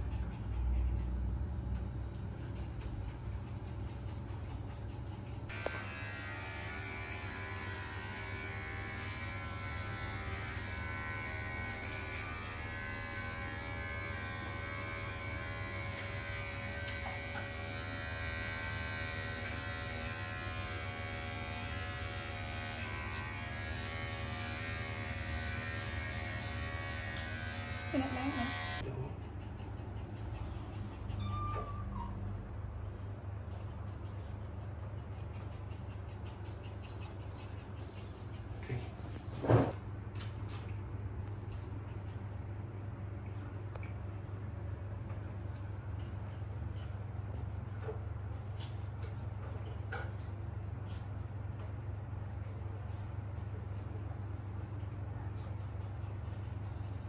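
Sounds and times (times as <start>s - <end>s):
electric hair clipper running: 5.5s - 28.8s.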